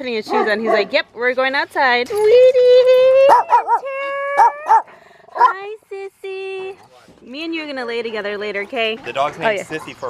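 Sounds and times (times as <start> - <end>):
dog whining: 3.2 - 5.5
dog yipping: 3.2 - 5.6.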